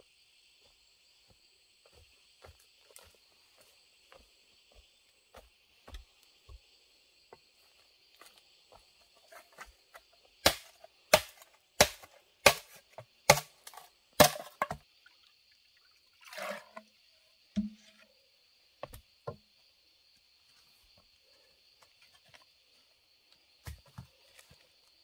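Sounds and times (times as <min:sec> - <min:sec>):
insects buzzing: 0:00.0 - 0:25.0
chopping strikes into wood: 0:10.4 - 0:14.8.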